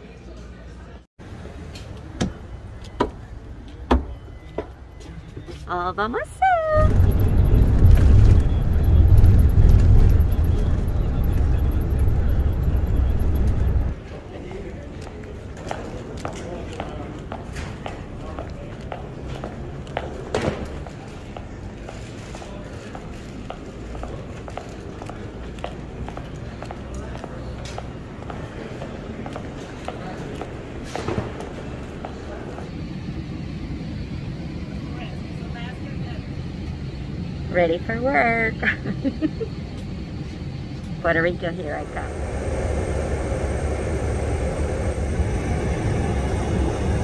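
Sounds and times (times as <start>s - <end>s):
bus engine and tyres rumbling: 1.2s - 37.7s, 38.6s - 47.0s
low steady hum: 5.7s - 14.0s.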